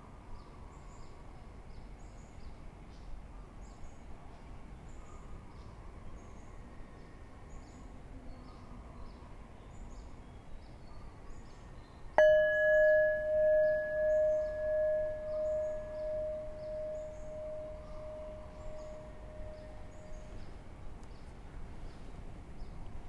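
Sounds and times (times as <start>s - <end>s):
meditation bell ringing: 12.2s - 20.4s.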